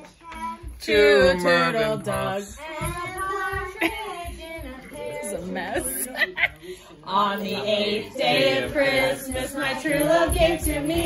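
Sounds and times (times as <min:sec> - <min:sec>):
child singing: 0:00.0 - 0:06.0, 0:07.2 - 0:11.0.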